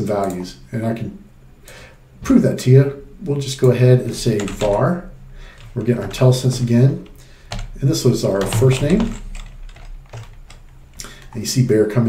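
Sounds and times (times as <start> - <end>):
keyboard keystrokes: 3.6 - 4.8, 5.5 - 11.4.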